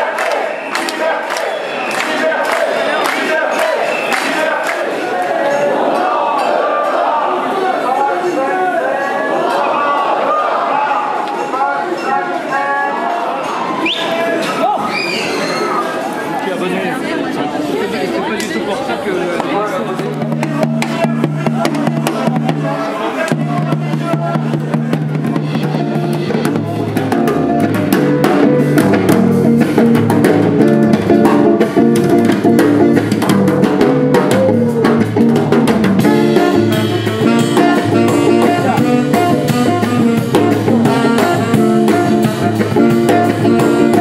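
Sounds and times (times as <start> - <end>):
voices: 0.0 - 28.5
drum kit: 19.9 - 44.0
electric bass: 23.6 - 44.0
saxophones: 25.2 - 30.0, 36.0 - 44.0.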